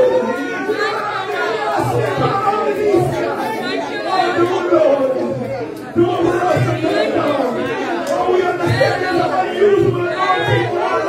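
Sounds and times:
overlapping voices of congregation: 0.0s - 11.0s.

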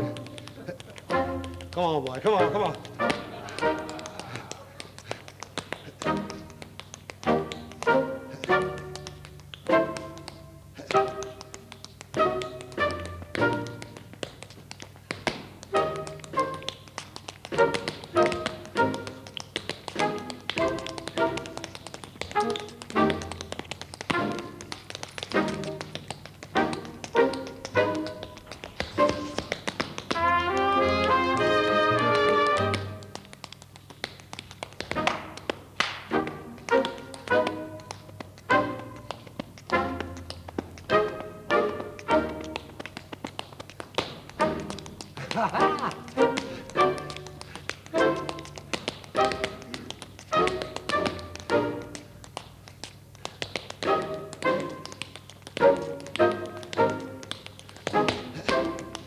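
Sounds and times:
instrumental music: 0.0s - 59.0s
tap shoes on wooden floor: 0.0s - 59.0s.

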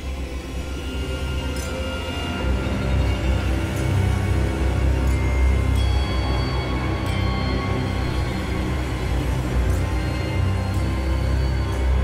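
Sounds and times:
ominous horror film score: 0.0s - 12.0s.

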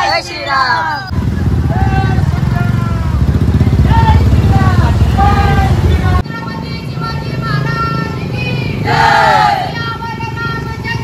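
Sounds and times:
motorcycle engines running: 0.0s - 11.0s
voices calling out: 0.0s - 11.0s.

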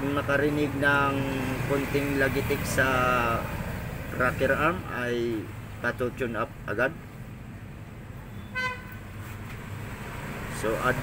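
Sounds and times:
horn toot: 8.4s - 9.0s.

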